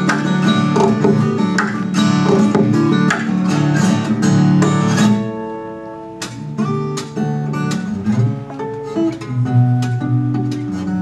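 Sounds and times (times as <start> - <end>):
acoustic guitar playing: 0.0 - 11.0.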